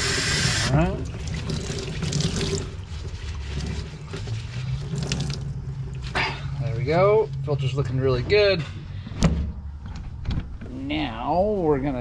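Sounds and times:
tap water splashing into sink: 1.0s - 2.7s.

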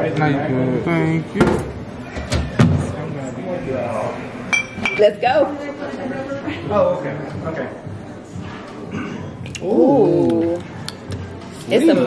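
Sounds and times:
wine glasses clinking: 4.5s - 5.2s.

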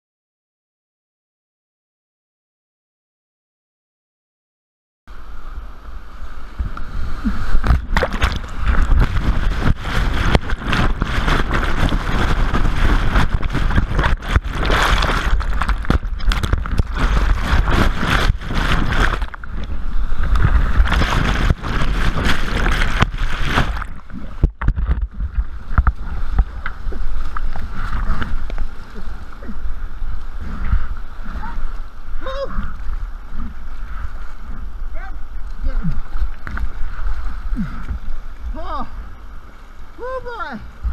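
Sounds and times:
whitewater rushing and splashing: 5.1s - 40.9s
heavy water hits on camera: 6.6s - 29.5s.

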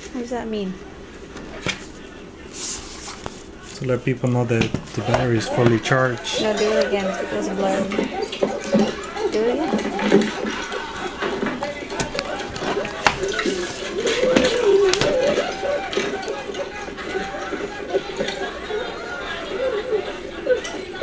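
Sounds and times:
indistinct voices: 0.0s - 21.0s.

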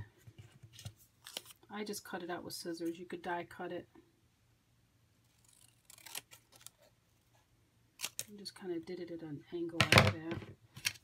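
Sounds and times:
scissors snipping paper: 5.3s - 6.7s.

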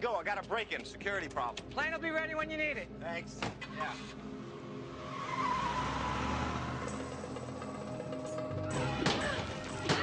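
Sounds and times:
car engine: 4.3s - 9.8s.

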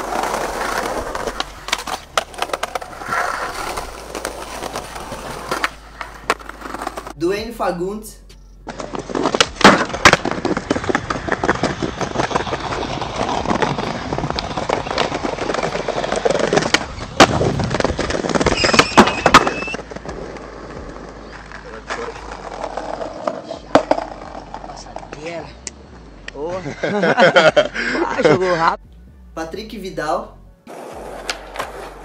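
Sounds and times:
skateboard popping and landing: 0.0s - 7.2s, 8.6s - 25.3s, 30.7s - 32.0s
skateboard wheels rolling on concrete: 0.0s - 7.3s, 8.3s - 28.0s, 30.6s - 32.0s.

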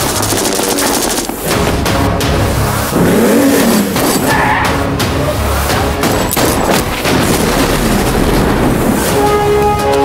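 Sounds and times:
action trailer music: 0.0s - 10.0s.

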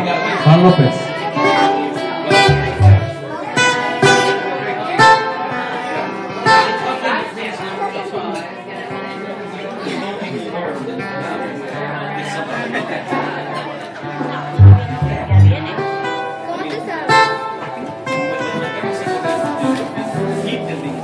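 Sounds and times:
acoustic guitars playing: 2.3s - 3.8s, 14.6s - 16.2s
electric bass guitar: 2.4s - 3.3s, 14.6s - 15.8s.

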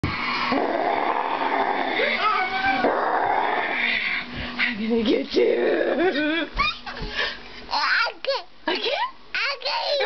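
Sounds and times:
person making playful growls: 0.3s - 4.1s.

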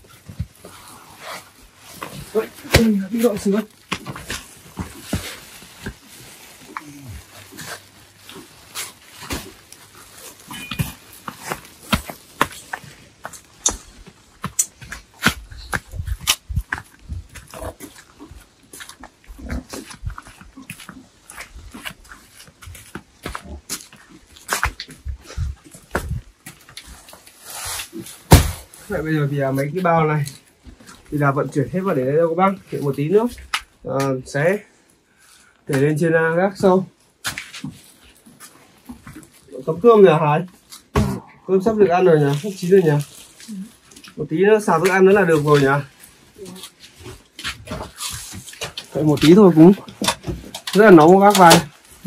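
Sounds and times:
footsteps: 0.0s - 31.7s
plastic sacks rustling: 0.0s - 34.8s, 36.5s - 52.0s
sack thumping down: 28.3s - 28.8s.

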